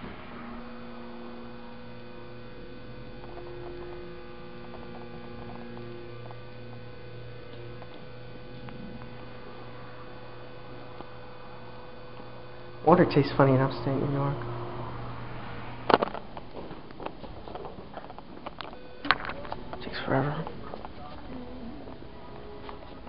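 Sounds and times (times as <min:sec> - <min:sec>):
electrical hum: 0:00.0 - 0:23.0
steady low tones: 0:00.0 - 0:23.0.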